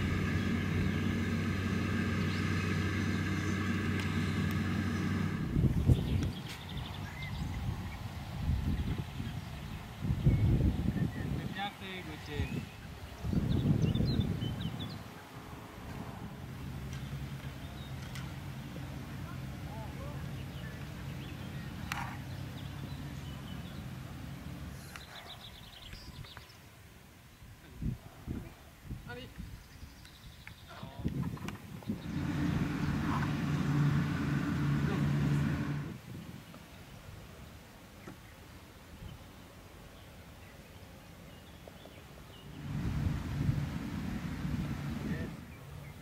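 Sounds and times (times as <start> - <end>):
motor humming: 0.0 - 6.4, 31.9 - 36.0, 42.4 - 45.7
distant engine hum: 0.0 - 25.9, 30.4 - 36.6, 40.8 - 46.0
wind on microphone: 3.1 - 16.5, 27.5 - 30.0, 30.7 - 36.5, 42.4 - 46.0.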